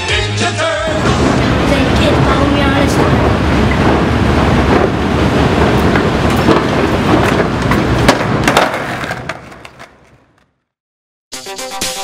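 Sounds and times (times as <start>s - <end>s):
wind noise on microphone: 0.9s - 9.2s
skateboard wheels rolling: 0.9s - 10.6s
skateboard clacks: 1.0s - 10.6s.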